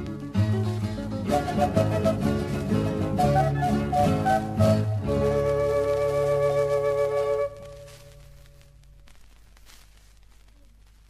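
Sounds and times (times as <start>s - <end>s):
flute and guitar sustained chord: 1.2s - 8.1s.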